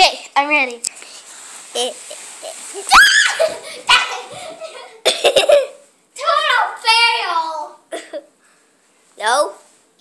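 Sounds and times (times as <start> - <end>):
girl squealing: 2.8 - 4.4
girl giggling: 2.8 - 5.8.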